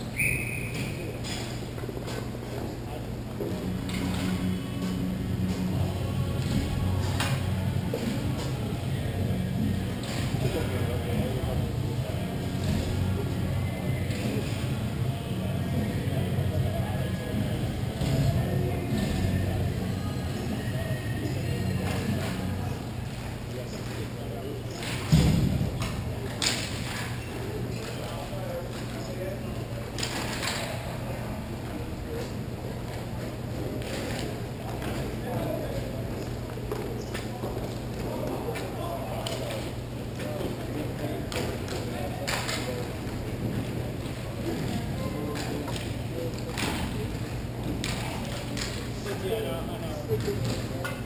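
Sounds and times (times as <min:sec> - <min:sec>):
distant voices: 0:00.0 - 0:51.0
steady low hum: 0:00.0 - 0:51.0.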